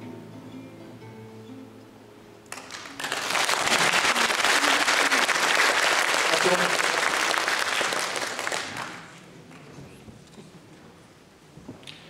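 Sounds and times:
audience applauding: 2.5s - 9.6s.

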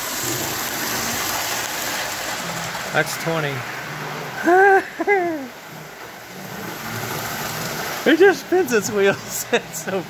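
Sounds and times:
model train motor whirring: 0.0s - 4.6s, 5.4s - 10.0s.

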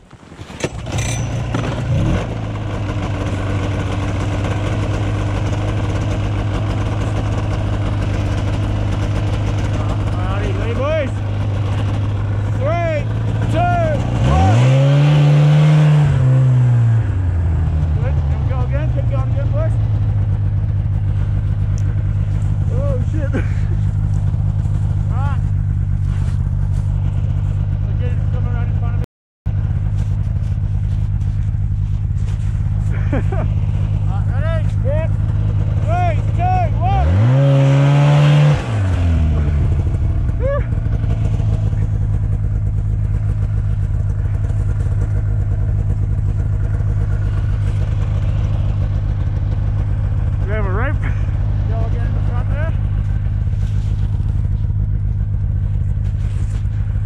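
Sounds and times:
snowmobile engine idling and revving: 0.0s - 57.0s.

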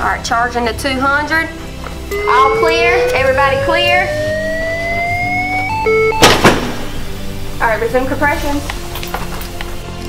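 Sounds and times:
charge-ready beep tones: 2.1s - 6.4s
defibrillator charging whine: 2.1s - 6.8s.

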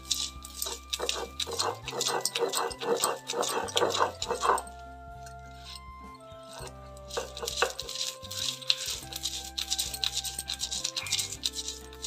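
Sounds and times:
grinding stone scraping: 0.0s - 12.0s
light background music: 0.0s - 12.0s.

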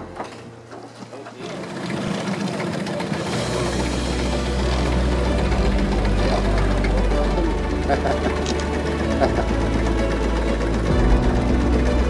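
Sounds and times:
music: 0.0s - 1.4s, 3.1s - 12.0s
boat engine rattling: 0.0s - 12.0s.

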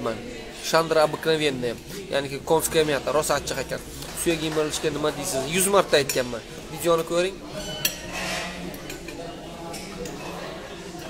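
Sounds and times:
tableware clinks: 7.5s - 10.5s.

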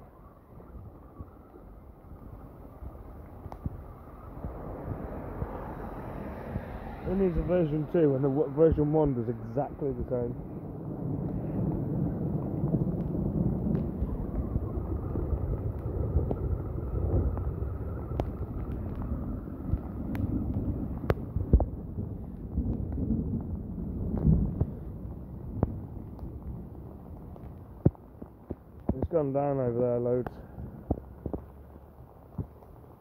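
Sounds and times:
wind buffeting microphone: 0.0s - 33.0s
heavy rain: 1.5s - 33.0s.

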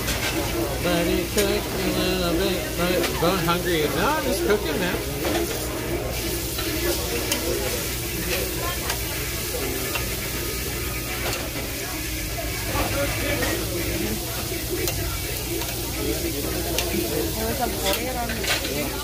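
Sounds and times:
meat sizzling on a grill: 0.0s - 19.0s
murmured voices: 0.0s - 19.0s.

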